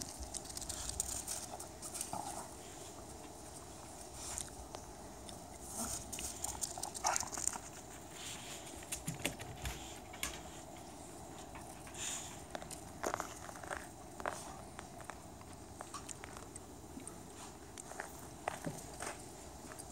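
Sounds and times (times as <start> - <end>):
paws crunching on icy snow: 12.0 - 16.5.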